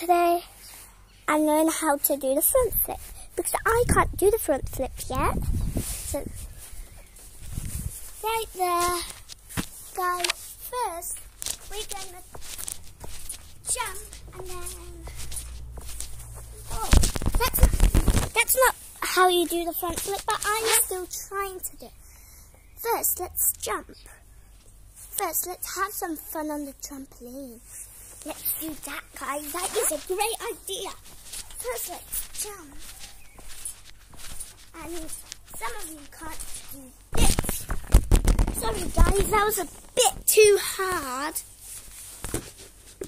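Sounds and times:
feet thudding on trampoline: 11.4 - 18.4, 29.5 - 39.5.

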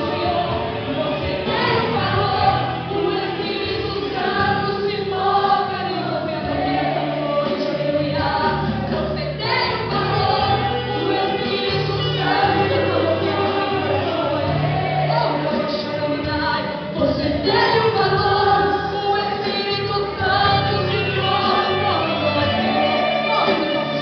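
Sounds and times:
gospel singing voices: 0.0 - 24.0
instrumental accompaniment: 0.0 - 24.0.

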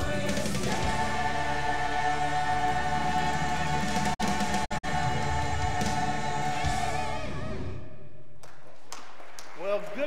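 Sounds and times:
church choir singing: 0.0 - 7.8.

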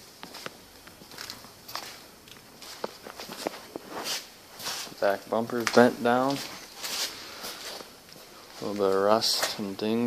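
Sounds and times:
footsteps on concrete: 0.2 - 9.6
shoe scuffs: 1.2 - 5.1, 5.8 - 9.6.

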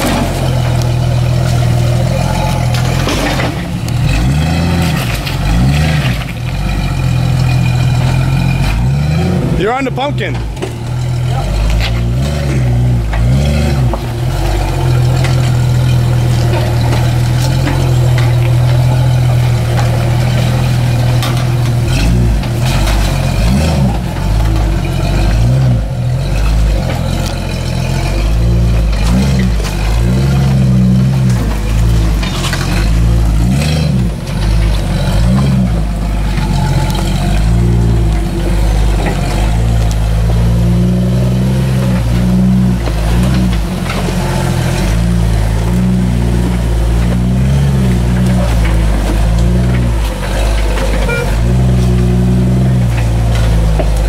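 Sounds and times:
engine revving and idling: 0.0 - 54.0.

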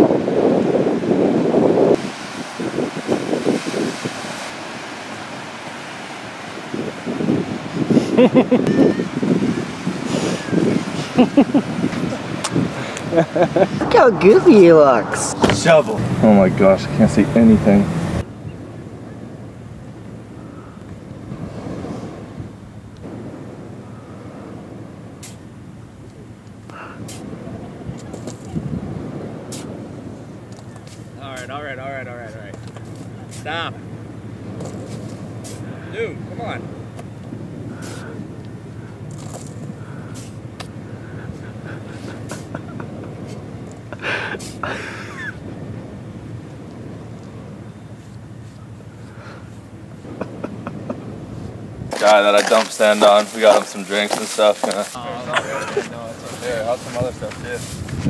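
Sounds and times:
wind and surf rushing: 0.0 - 58.0
indistinct voices: 13.7 - 18.0.

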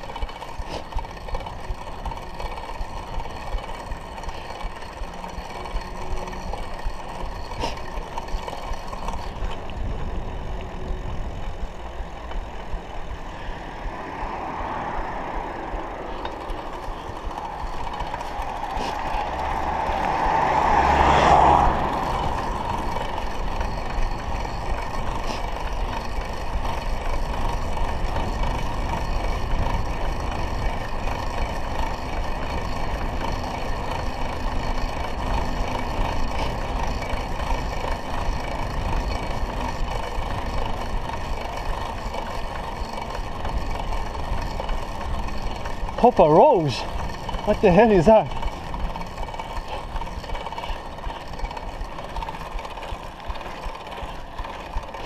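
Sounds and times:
bicycle tyre noise: 0.0 - 55.0.

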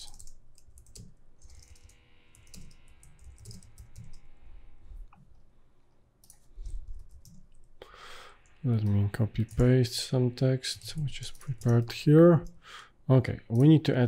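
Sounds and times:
computer keyboard typing: 0.0 - 4.2, 6.2 - 7.7, 8.8 - 9.9, 10.7 - 12.4.

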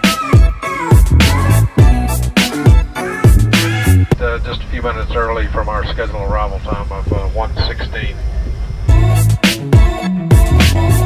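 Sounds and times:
airliner cabin rumble: 4.0 - 8.9
person talking: 4.1 - 8.2.

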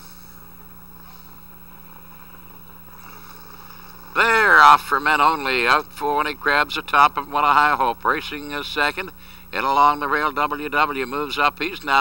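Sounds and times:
recording hum and hiss: 0.0 - 12.0.

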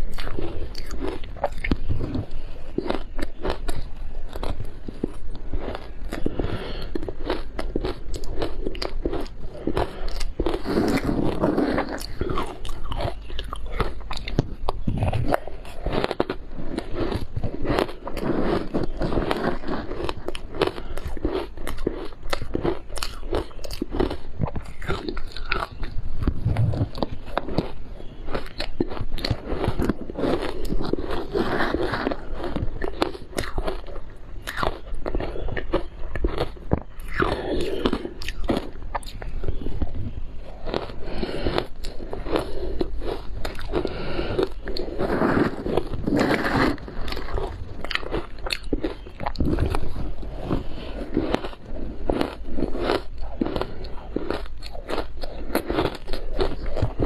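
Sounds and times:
crunching and chewing ice: 0.0 - 57.0.

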